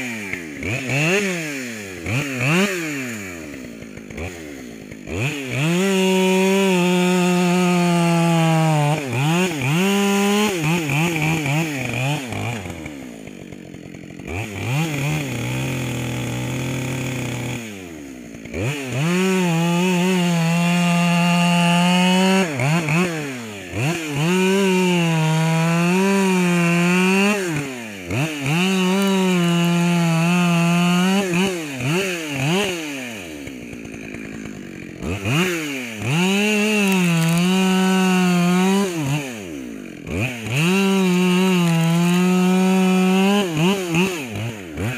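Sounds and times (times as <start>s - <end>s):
chainsaw cutting log: 0.0s - 44.9s.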